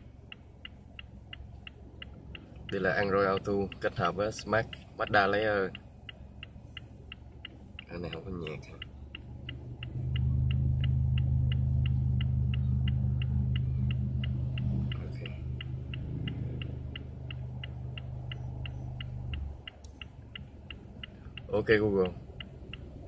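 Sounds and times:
turn-signal indicator ticking: 0.0s - 23.0s.

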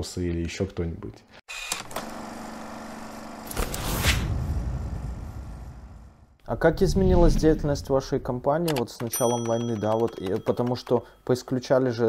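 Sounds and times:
whoosh: 3.8s - 8.5s
low boom: 4.2s - 8.5s
held tone: 9.0s - 11.3s.

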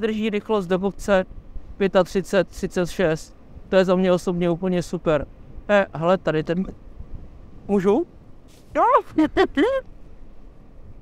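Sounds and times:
man speaking excitedly: 0.0s - 1.2s, 1.8s - 6.8s, 7.7s - 8.1s, 8.7s - 9.8s
wind and road noise: 0.0s - 11.0s.

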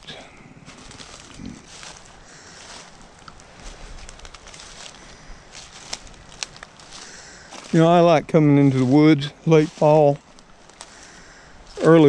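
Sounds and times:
footsteps crunching through dry leaves: 0.0s - 12.0s.

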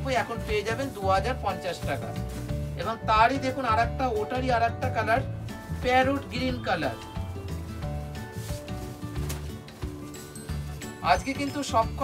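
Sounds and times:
cloth rustling: 0.0s - 3.8s, 5.0s - 12.0s
cloth swishes: 0.2s - 2.9s, 7.5s - 11.1s.

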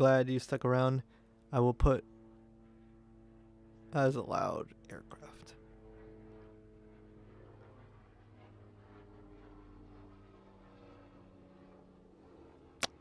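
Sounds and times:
aircraft drone overhead: 0.0s - 13.0s.

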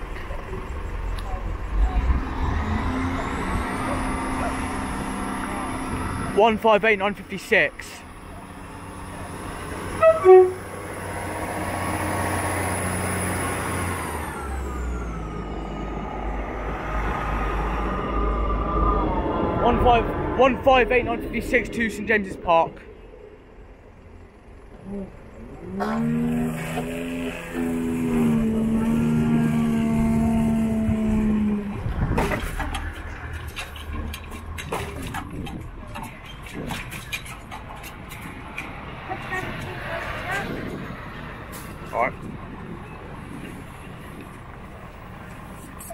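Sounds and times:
deep rumble: 0.0s - 6.6s, 7.2s - 45.9s
clicks and knocks of traffic: 0.0s - 15.4s, 16.4s - 45.9s
diesel train passing: 0.0s - 45.9s.

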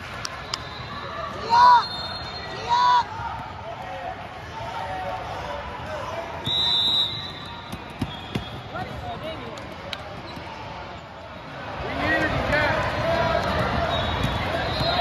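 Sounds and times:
voices of players and spectators: 0.0s - 15.0s
basketball bouncing: 7.7s - 9.3s, 13.5s - 15.0s.

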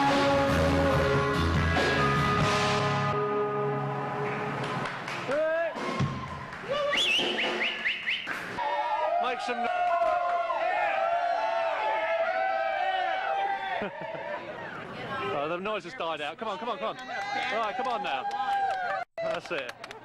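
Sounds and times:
live band music: 0.0s - 4.8s
crowd cheering and shouting: 3.2s - 7.3s, 8.6s - 15.0s, 16.9s - 19.4s
shrill whistle: 6.8s - 8.4s.

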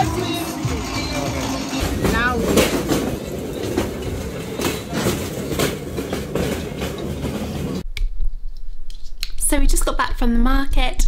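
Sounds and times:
loud clattering: 0.5s - 7.8s.

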